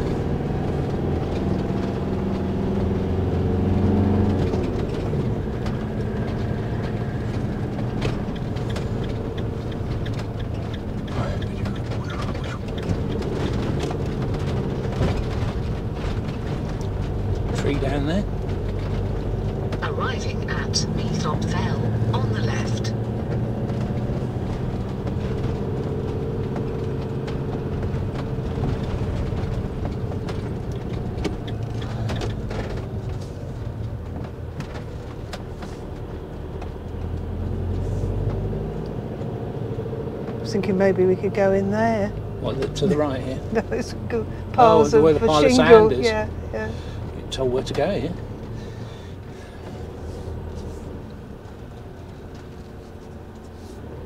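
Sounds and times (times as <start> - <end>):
vehicle engine and road noise: 0.0 - 54.0
knocks and rattles: 3.8 - 20.6, 22.9 - 39.4.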